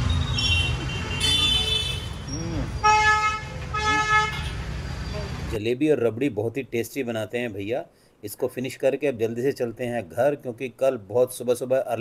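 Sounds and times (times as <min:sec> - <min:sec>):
traffic rumble: 0:00.0 - 0:05.6
vehicle horns honking: 0:00.1 - 0:04.7.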